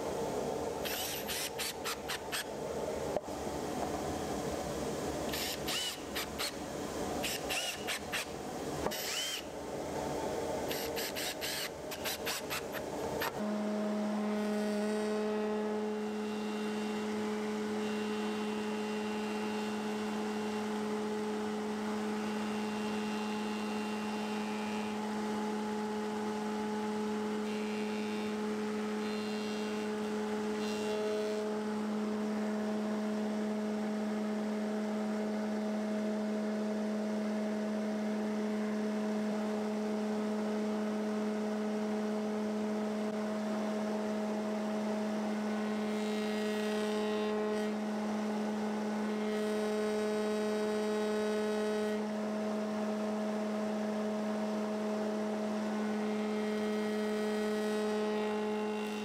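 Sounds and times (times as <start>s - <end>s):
high hissy cutting: 0.8s - 2.5s, 5.3s - 9.6s, 10.7s - 13.3s.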